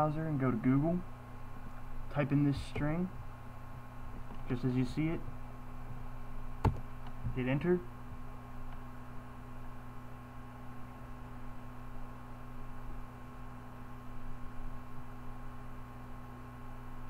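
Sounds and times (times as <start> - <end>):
electrical hum with hiss: 0.0 - 17.0.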